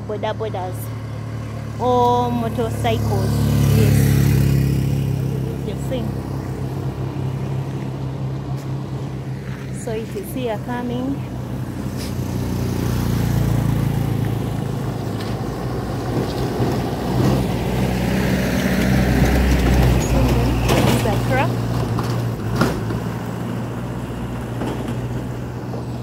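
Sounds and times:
light truck passing: 0.0s - 26.0s
motorcycle passing: 0.0s - 26.0s.

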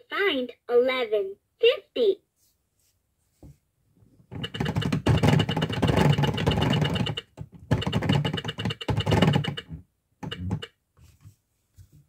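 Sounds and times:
plastic toy clock gears clicking: 4.4s - 10.7s.

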